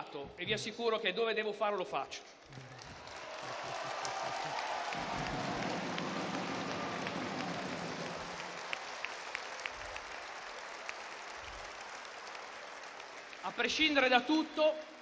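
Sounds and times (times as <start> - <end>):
audience applauding: 2.4 - 14.2.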